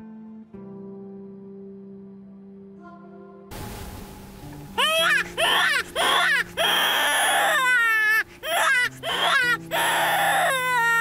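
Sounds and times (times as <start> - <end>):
high wailing cries: 4.8 - 11.0.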